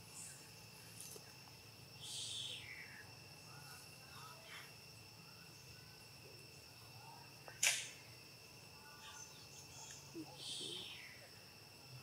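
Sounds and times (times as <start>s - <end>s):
faint insect drone: 0.0s - 12.0s.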